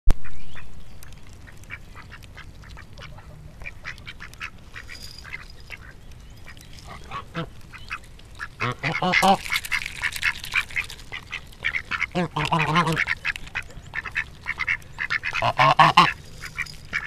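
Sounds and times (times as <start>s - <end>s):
ducks calling softly: 0.2s - 17.0s
duck quack: 8.6s - 9.4s, 10.8s - 16.2s.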